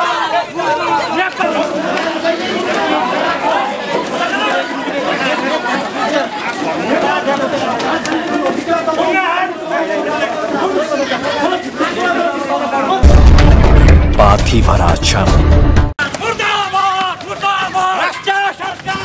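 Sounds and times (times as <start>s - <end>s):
crowd shouting and talking: 0.0s - 19.0s.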